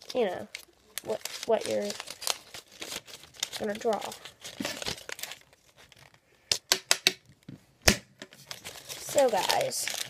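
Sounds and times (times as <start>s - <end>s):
paper rustling: 0.0s - 6.2s, 8.3s - 10.0s.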